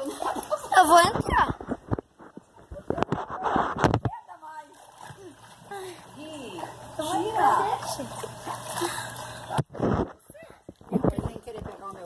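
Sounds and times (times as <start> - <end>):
water splashing and sloshing: 0.0 - 12.0.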